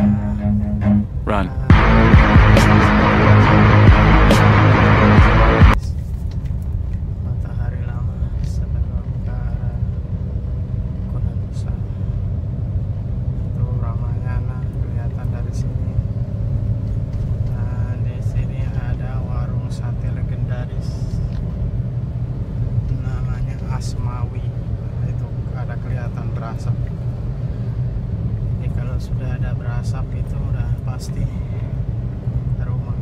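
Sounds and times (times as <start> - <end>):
car engine and tyres rumbling: 0.0 - 33.0.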